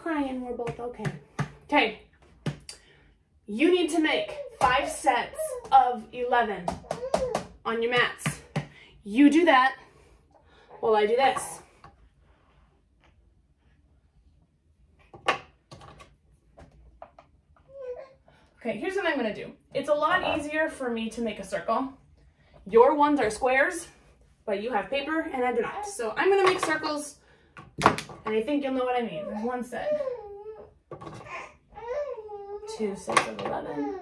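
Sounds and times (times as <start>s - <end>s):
baby fussing with whiny cries: 29.2s - 32.7s.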